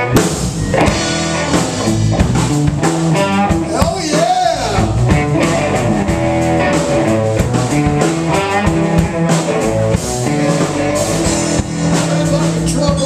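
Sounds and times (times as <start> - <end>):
live blues band playing: 0.0 - 13.0.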